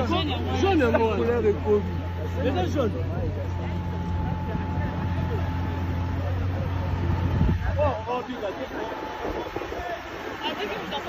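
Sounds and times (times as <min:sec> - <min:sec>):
crowd voices: 0:00.0 - 0:11.0
vehicle engine humming: 0:00.0 - 0:11.0.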